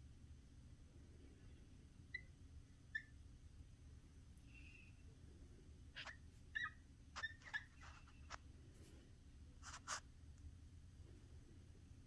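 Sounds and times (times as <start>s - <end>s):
marker tip squeaking: 6.0s - 8.4s, 9.6s - 10.0s
marker writing on a whiteboard: 9.6s - 10.0s.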